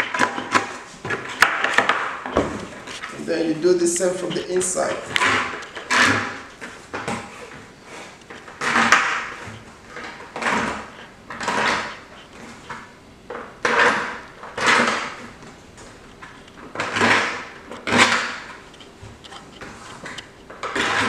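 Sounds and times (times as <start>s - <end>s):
knife scraping plastic bucket: 0.0s - 15.5s, 16.2s - 21.0s.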